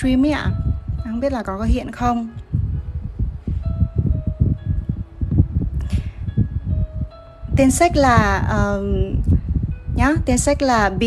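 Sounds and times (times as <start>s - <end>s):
low uneven rumble: 0.0s - 11.0s.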